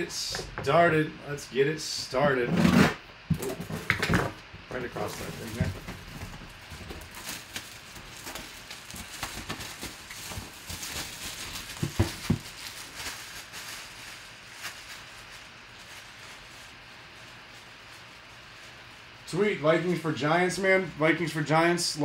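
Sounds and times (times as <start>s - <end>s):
plastic wrap crinkling: 3.4s - 19.3s.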